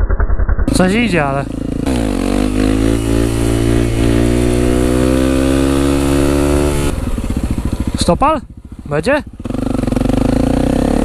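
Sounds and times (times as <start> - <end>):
motorcycle engine revving: 0.0 - 11.0.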